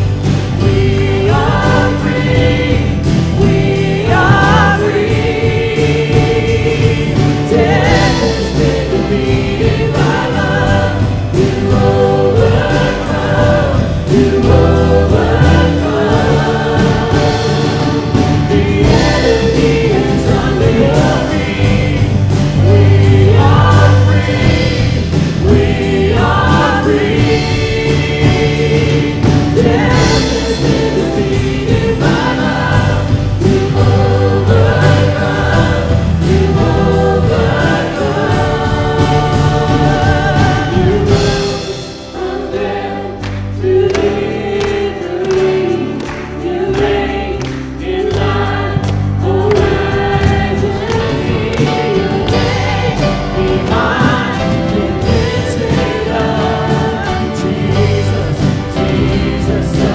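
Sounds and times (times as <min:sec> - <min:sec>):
worship band and choir: 0:00.0 - 0:59.9.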